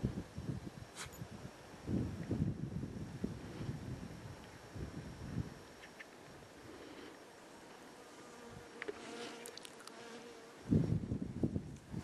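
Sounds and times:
insect buzzing: 1.8s - 11.8s.

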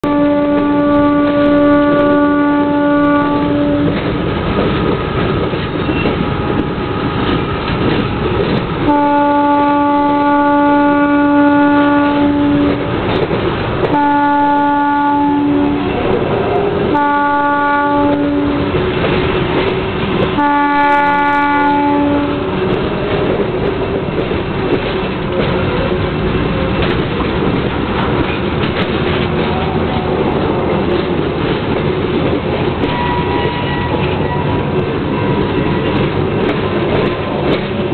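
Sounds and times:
diesel locomotive horn blasts: 0.0s - 4.1s, 8.8s - 13.0s, 13.9s - 19.0s, 19.8s - 24.1s, 32.8s - 37.5s
freight train rumble: 0.0s - 37.9s.

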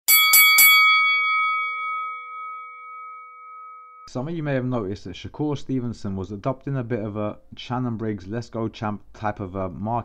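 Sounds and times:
bell-like chime ringing: 0.1s - 4.1s.

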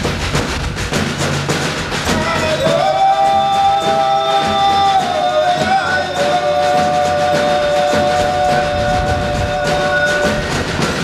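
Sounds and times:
drum and percussion beats: 0.0s - 11.0s.

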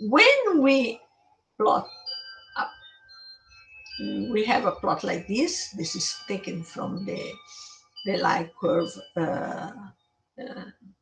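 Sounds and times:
chime-like melody: 1.6s - 9.8s.

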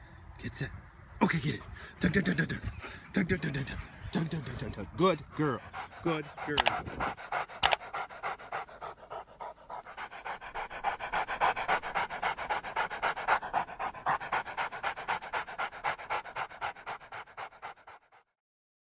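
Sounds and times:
puppy panting: 1.7s - 18.3s.

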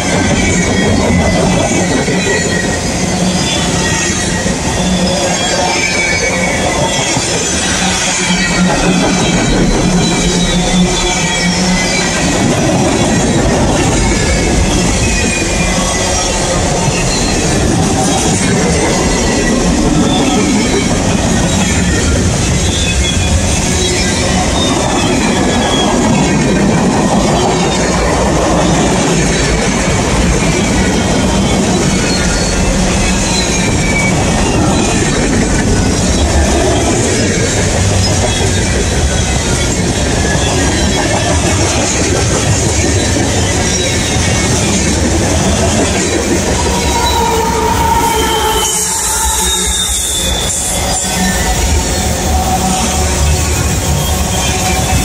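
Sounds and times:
freight train wheels rumbling: 0.0s - 55.0s
locomotive tones: 0.0s - 55.0s
faint wheel squeal: 30.5s - 55.0s.

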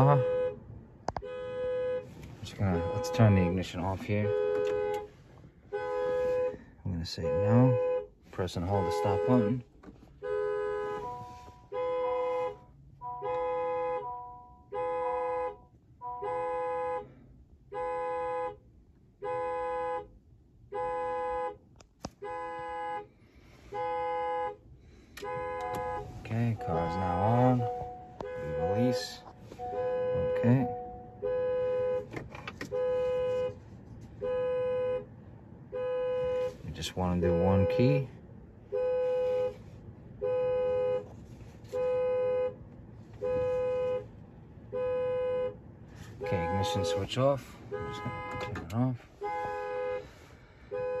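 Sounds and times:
car warning chime: 2.0s - 5.1s, 8.6s - 9.6s, 10.2s - 11.9s, 13.0s - 14.8s, 25.2s - 33.3s, 35.8s - 38.1s, 46.2s - 50.0s.

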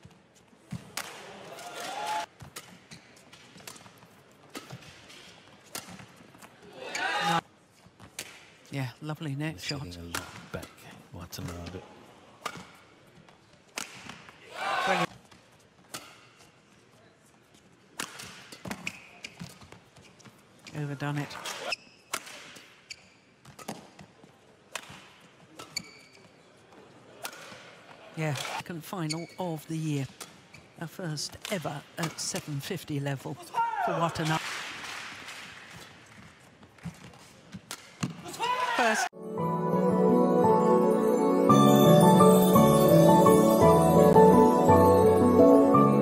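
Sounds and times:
arena crowd noise: 0.8s - 2.4s, 6.6s - 7.5s, 14.3s - 15.1s.

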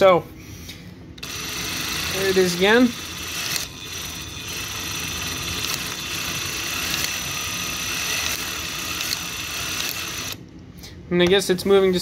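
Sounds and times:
electric motor gear whine: 1.2s - 10.4s.

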